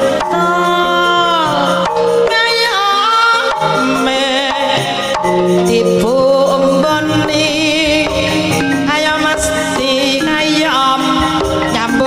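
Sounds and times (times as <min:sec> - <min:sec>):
gamelan music: 0:00.0 - 0:12.0
woman singing: 0:00.0 - 0:12.0.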